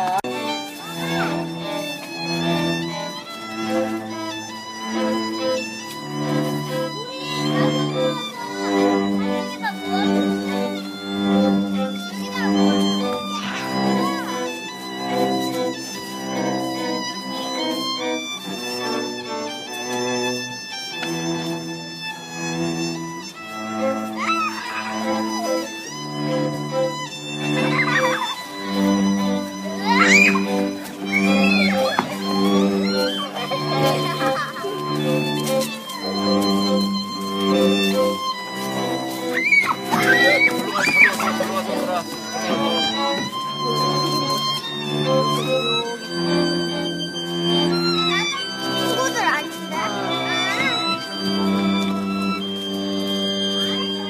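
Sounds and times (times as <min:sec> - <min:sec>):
bowed strings music: 0:00.0 - 0:54.0.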